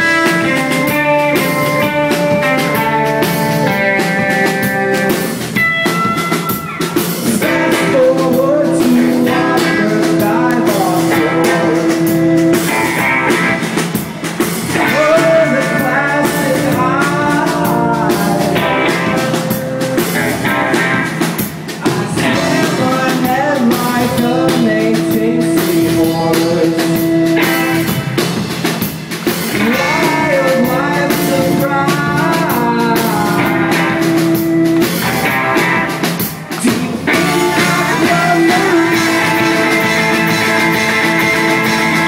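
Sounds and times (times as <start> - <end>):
live rock band playing: 0.0 - 42.0.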